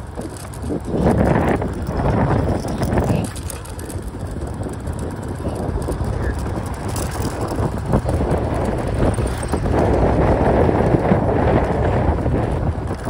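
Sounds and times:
small motorbike engine running: 0.0 - 13.0
wind rumbling on microphone: 0.0 - 13.0
muffled voice: 2.7 - 3.9.

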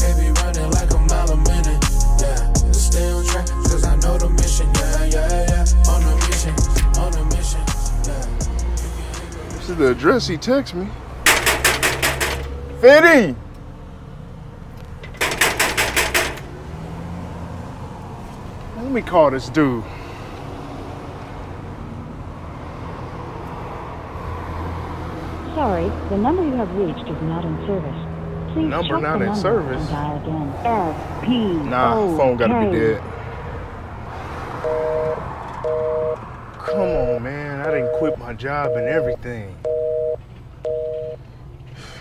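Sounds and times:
knocking on metal screen door: 11.3 - 12.6, 15.1 - 16.5
telephone busy signal beeps: 34.6 - 37.1, 37.7 - 41.2.

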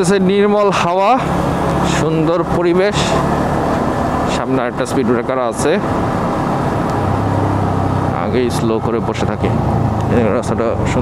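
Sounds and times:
road noise: 0.0 - 11.0.

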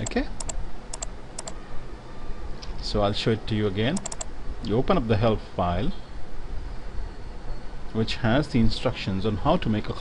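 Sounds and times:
sharp computer clicks: 0.0 - 1.6, 3.9 - 4.3
low steady hum: 0.0 - 10.0.

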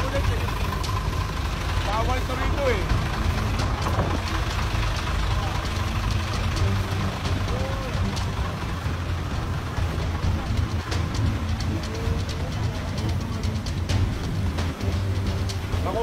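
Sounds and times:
faint voices: 0.0 - 16.0
truck engine idling: 0.0 - 16.0.

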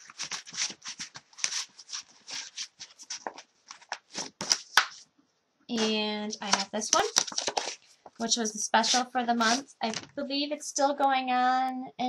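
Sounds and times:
plastic packages rustling and clicking: 0.0 - 5.0, 5.8 - 8.2.

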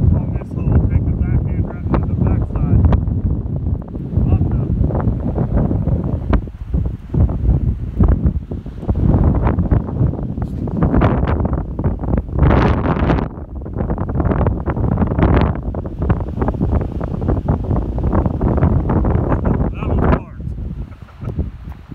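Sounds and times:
gusty wind buffeting microphone: 0.0 - 21.9.

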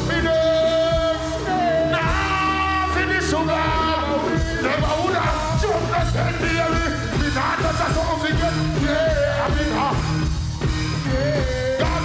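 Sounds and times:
dancehall music with bass: 0.0 - 12.0.

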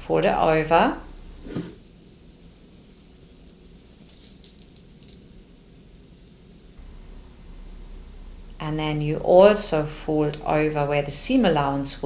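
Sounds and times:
fabric rustling: 2.7 - 4.8.

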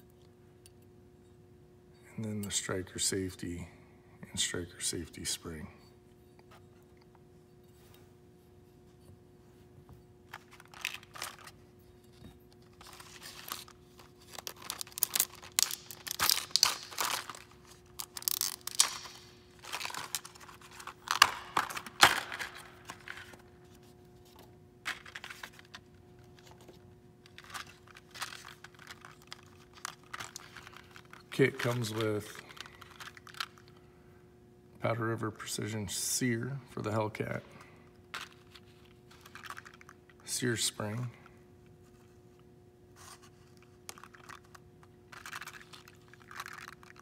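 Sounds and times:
plastic packaging crinkling: 10.3 - 11.6, 12.6 - 23.4, 24.9 - 33.8, 38.1 - 40.2, 43.5 - 47.0.

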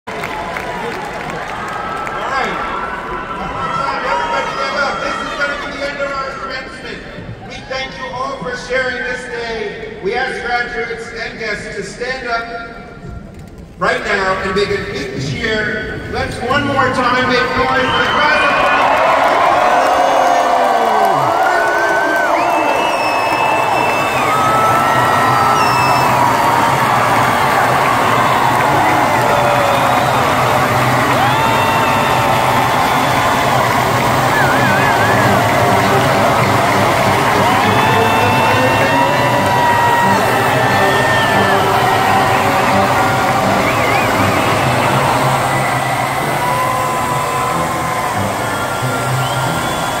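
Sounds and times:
crowd cheering and shouting: 0.1 - 8.3, 16.5 - 50.0.

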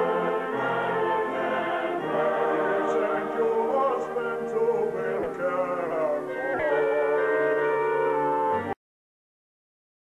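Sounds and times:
cast singing in chorus: 0.0 - 8.3.

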